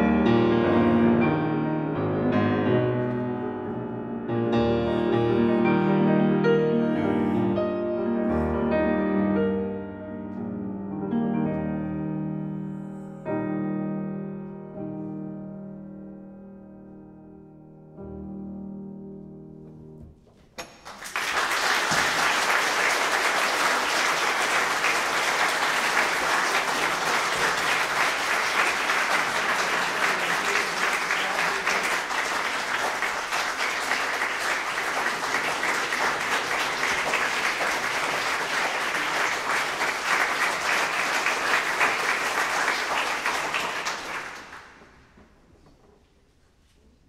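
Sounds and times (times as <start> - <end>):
audience applauding: 20.6 - 45.1.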